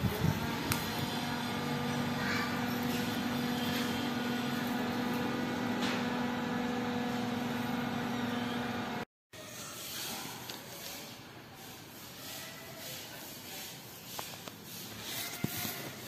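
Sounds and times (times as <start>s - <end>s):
mechanical hum: 0.0s - 16.0s.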